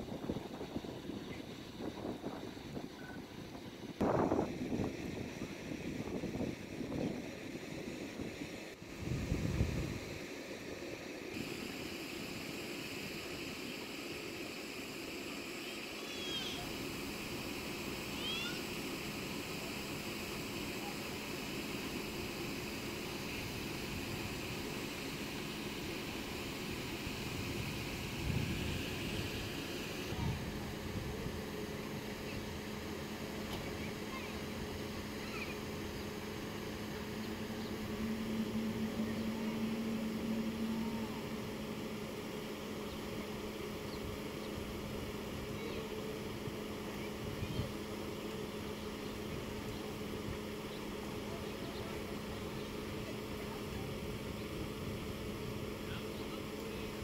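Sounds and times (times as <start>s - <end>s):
steady hiss: 0.0s - 57.0s
faint indistinct voices: 30.0s - 57.0s.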